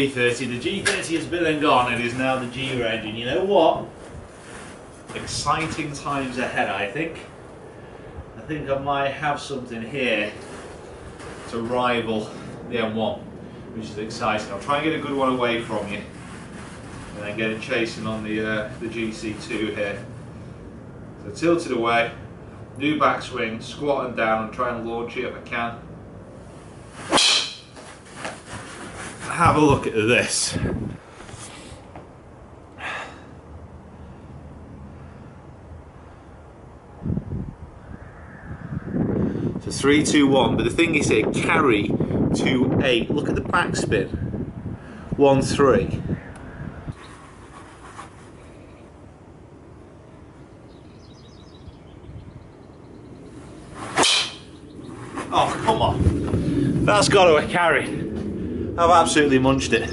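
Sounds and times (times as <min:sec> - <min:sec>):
wind rumble on microphone: 0:00.0 - 0:27.0, 0:28.0 - 0:31.5, 0:33.5 - 0:59.9
golf club swish: 0:26.9 - 0:29.4, 0:53.4 - 0:56.4.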